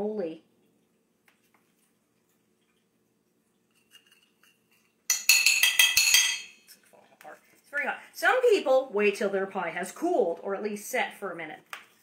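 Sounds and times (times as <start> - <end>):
cutlery clinking on a plate: 3.8 - 6.7.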